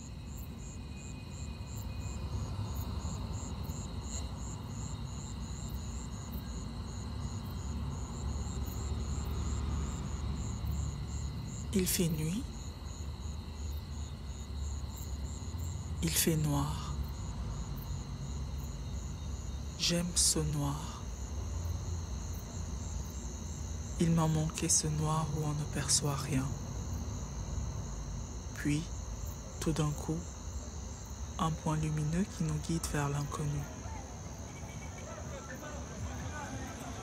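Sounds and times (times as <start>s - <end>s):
crickets chirping: 0.0s - 37.0s.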